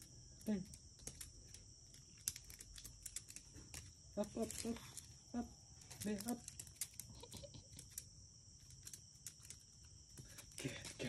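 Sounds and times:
insects droning: 0.0 - 11.0
dog claws tapping on concrete: 5.8 - 11.0.

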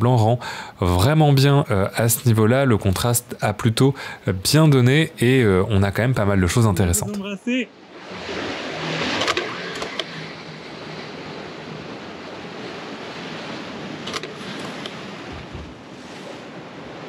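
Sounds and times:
waves breaking against seawall: 7.8 - 17.0.

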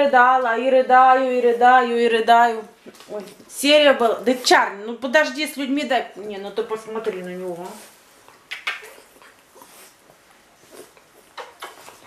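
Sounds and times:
dog sniffing and licking: 7.7 - 12.0.

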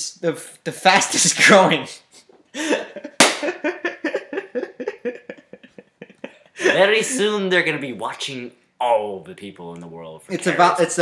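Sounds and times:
person laughing: 2.6 - 7.3.

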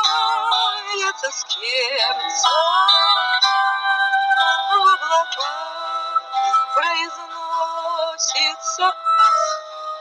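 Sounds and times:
person singing: 0.0 - 9.7
instrumental backing track: 0.0 - 10.0.

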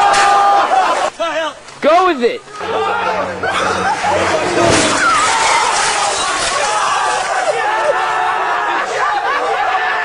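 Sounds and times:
people yelling: 0.0 - 10.0
van crashing into television: 4.3 - 7.5.

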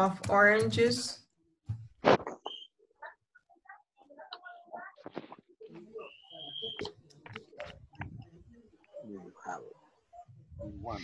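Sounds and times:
thin high whistle-like tone: 2.4 - 2.8, 5.9 - 7.0.

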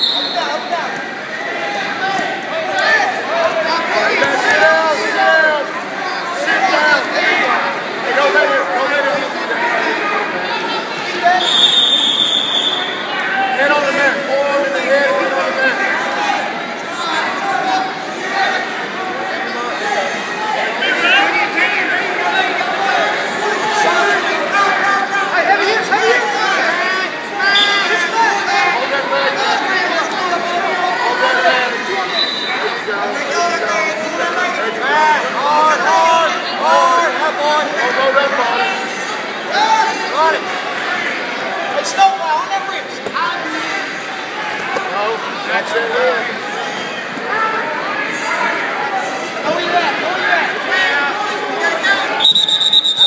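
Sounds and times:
people talking over one another: 0.0 - 53.0.

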